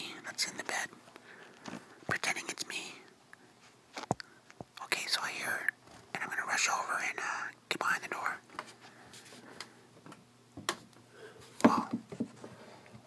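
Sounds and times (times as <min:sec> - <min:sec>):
man whispering: 0:00.0 - 0:00.9, 0:02.1 - 0:03.1, 0:04.8 - 0:08.4.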